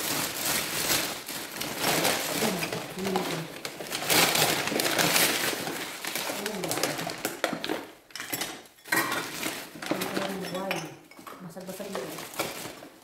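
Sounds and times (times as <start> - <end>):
bags rustling and crinkling: 0.0 - 13.0
glasses clinking: 8.2 - 9.3, 10.3 - 11.4.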